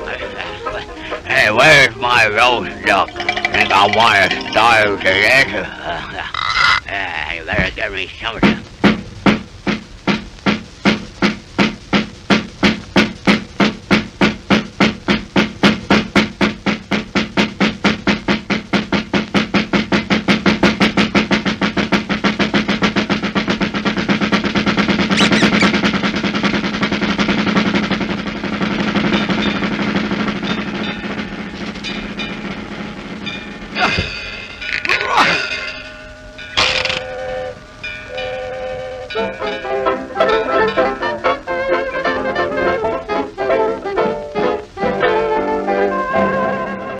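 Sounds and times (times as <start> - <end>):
held musical note: 0.0 - 5.7.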